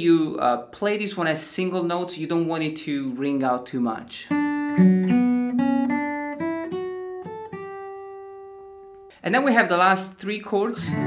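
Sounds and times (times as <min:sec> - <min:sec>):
acoustic guitar fingerpicked arpeggio: 0:04.3 - 0:09.2, 0:10.7 - 0:11.0.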